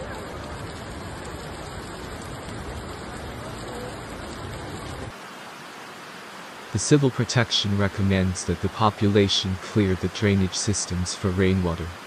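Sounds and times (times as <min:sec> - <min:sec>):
floodwater rushing down street: 0:00.0 - 0:12.0
heavy rain: 0:00.0 - 0:12.0.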